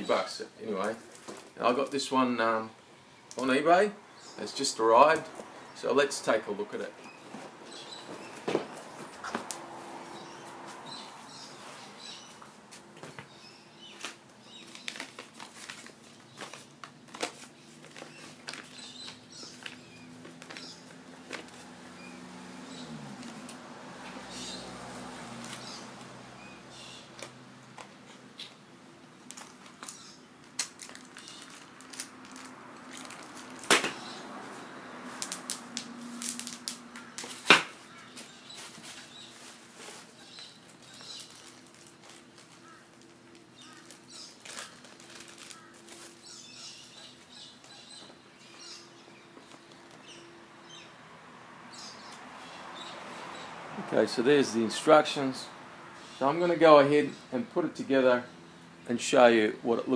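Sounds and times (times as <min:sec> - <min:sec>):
paper and cardboard rustling: 0:10.6 - 0:21.7, 0:30.5 - 0:47.3.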